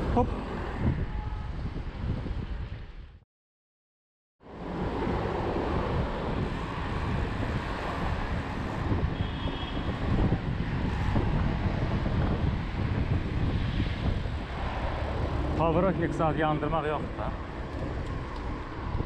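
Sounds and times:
wind buffeting microphone: 0:00.0 - 0:03.2, 0:04.5 - 0:19.0.

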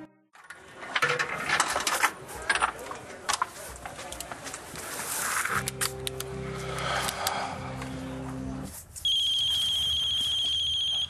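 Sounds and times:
mobile phone ringing tone: 0:09.1 - 0:11.0.

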